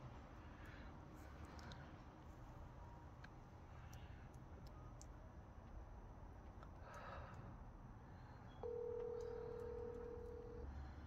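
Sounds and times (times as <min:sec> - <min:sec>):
telephone ringback tone: 0:08.6 - 0:10.6.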